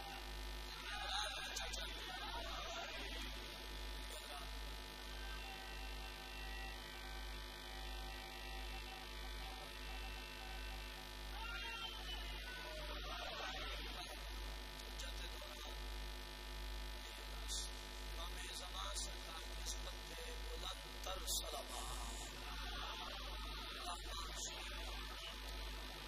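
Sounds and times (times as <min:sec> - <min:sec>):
faint voice: 0:00.0 - 0:04.5, 0:11.3 - 0:14.3, 0:17.0 - 0:26.0
low electrical mains hum: 0:00.0 - 0:26.0.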